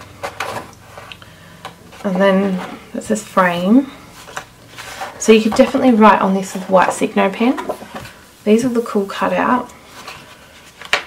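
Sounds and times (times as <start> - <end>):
paper rustling: 3.9 - 9.1, 9.9 - 11.0.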